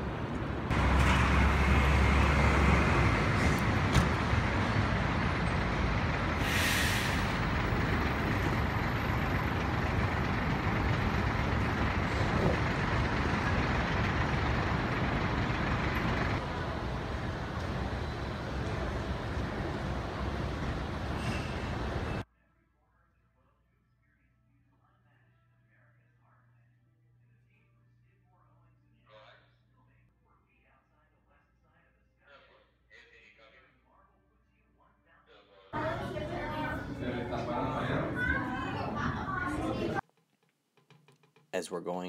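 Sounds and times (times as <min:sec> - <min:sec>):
heavy vehicle rumbling: 0:00.0 - 0:22.2, 0:35.8 - 0:40.0
street traffic: 0:00.0 - 0:22.2, 0:35.8 - 0:40.1
air brake hiss: 0:06.4 - 0:07.4, 0:21.1 - 0:21.8.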